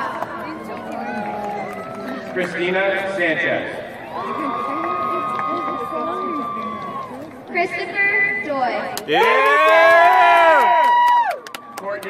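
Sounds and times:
crowd cheering: 0.0 - 3.1, 4.0 - 7.6, 9.0 - 12.0.

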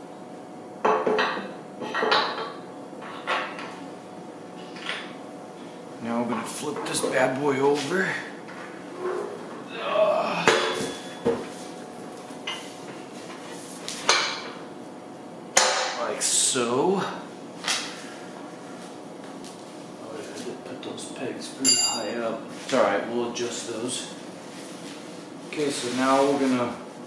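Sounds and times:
short ringing metal clink: 21.7 - 22.2.

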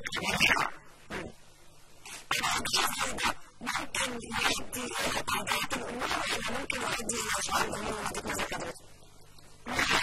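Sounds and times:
person talking: 0.0 - 1.4, 2.2 - 8.8.

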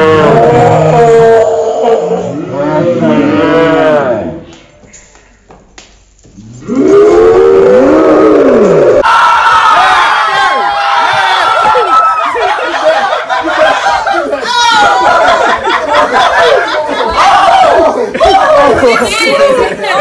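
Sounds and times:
overlapping voices: 8.9 - 20.0.

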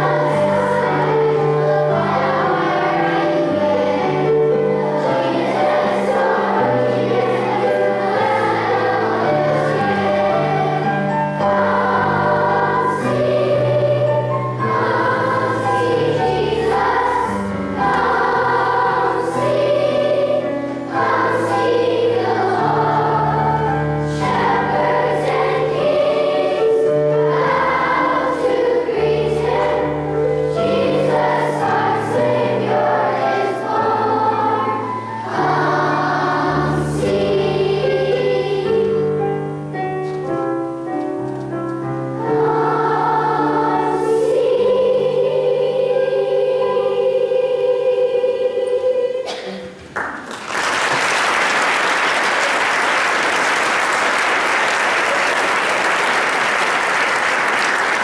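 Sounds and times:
instrumental accompaniment: 0.0 - 50.0
children's choir singing: 0.0 - 58.0.

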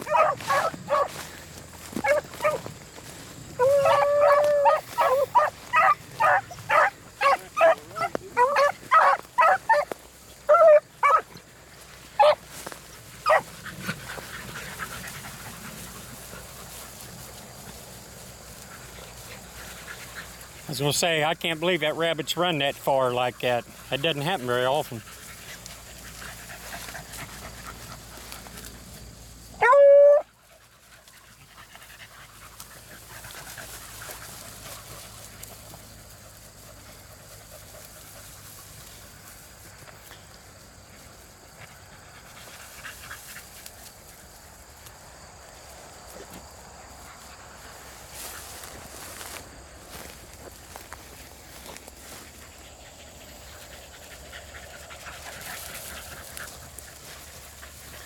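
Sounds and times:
dog baying: 0.0 - 1.2, 2.0 - 2.7, 3.6 - 9.9, 10.5 - 11.3, 13.2 - 13.4, 29.6 - 30.3
dogs panting: 0.0 - 29.2, 30.2 - 44.6, 46.1 - 58.0
rustling through weeds: 0.0 - 29.7, 30.3 - 58.0.

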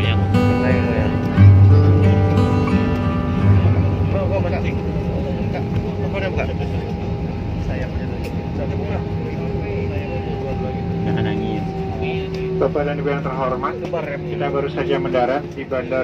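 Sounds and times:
faint voices: 0.0 - 16.0
jet cabin noise on runway: 0.0 - 16.0.

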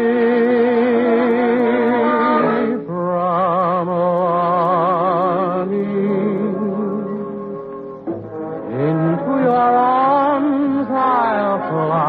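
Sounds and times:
tenor singing: 0.0 - 12.0.

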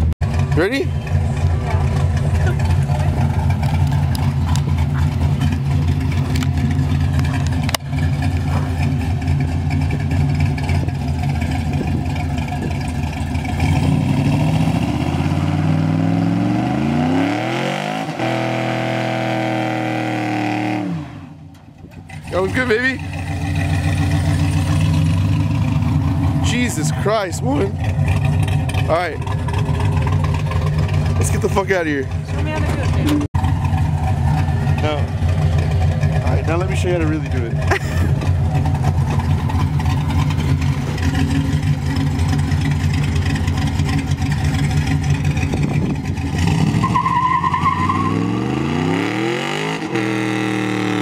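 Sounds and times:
engine at high revs: 13.3 - 21.4, 22.1 - 51.0
tyres squealing: 46.8 - 48.3.

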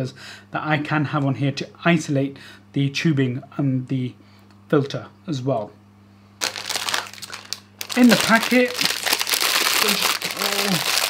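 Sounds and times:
plastic packet crinkling: 6.4 - 11.0.

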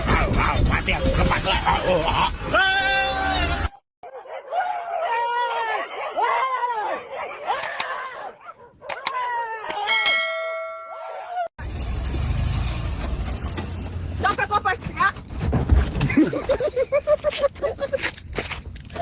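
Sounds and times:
bell-like ding: 9.7 - 11.2.

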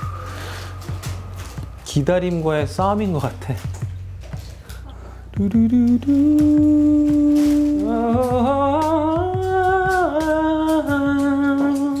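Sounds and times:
soft low beat: 0.0 - 12.0.

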